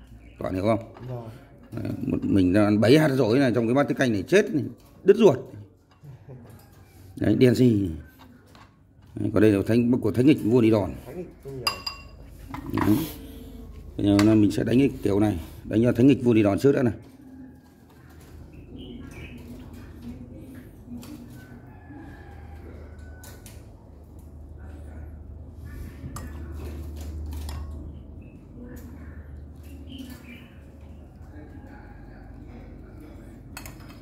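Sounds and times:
metal ladle clinking porcelain bowls: 11.6s - 13.0s.

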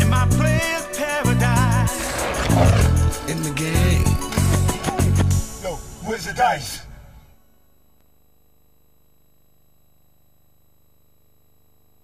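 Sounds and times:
rough burst of noise: 1.9s - 3.3s.

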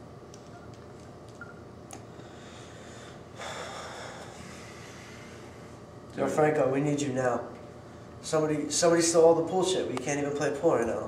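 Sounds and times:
person breathing out: 2.1s - 5.7s.

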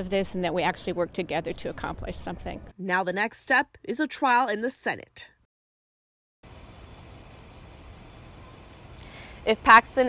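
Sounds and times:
city background rumble: 6.5s - 10.0s.

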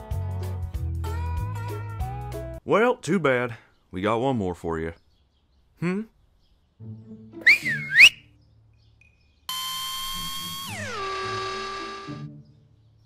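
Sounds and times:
two-note whistle: 7.4s - 8.3s.

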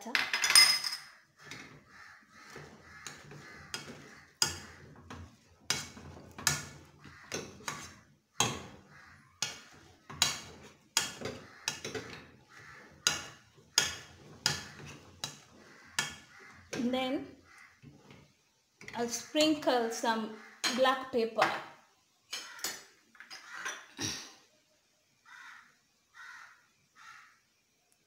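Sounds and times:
potato masher mashing potatoes: 1.4s - 19.6s.

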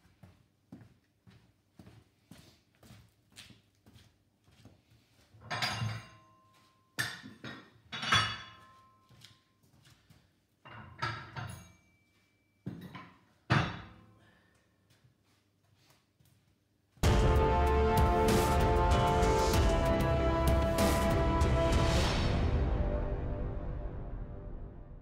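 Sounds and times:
light footsteps: 0.0s - 5.4s.

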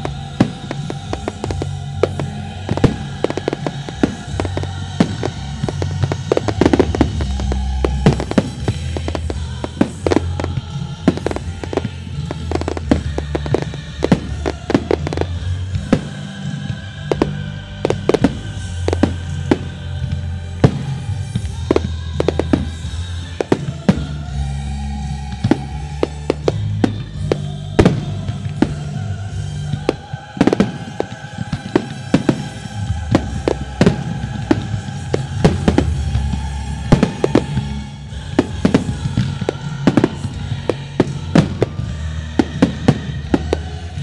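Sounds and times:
fireworks bangs and crackles: 0.0s - 44.0s
music: 0.0s - 44.0s.

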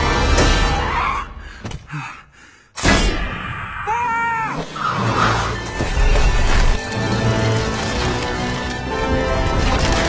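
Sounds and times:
loud film score music: 0.0s - 1.9s, 2.8s - 10.0s.

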